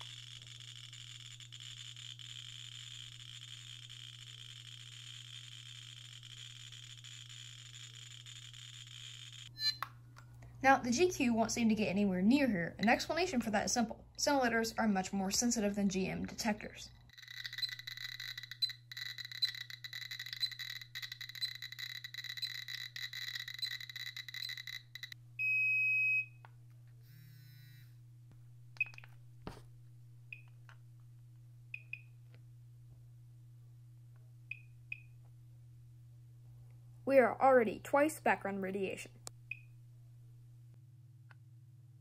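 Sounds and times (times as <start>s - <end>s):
geiger counter clicking rapidly: 0.0s - 9.8s, 17.1s - 25.2s
survey meter single chirps: 0.0s - 9.9s, 17.1s - 26.5s, 28.8s - 29.1s, 30.3s - 30.6s, 31.7s - 32.2s, 34.5s - 35.2s, 39.5s - 39.8s
low steady hum: 0.0s - 42.0s
warbling chirps: 17.1s - 25.2s
alarm beep: 17.2s - 26.4s.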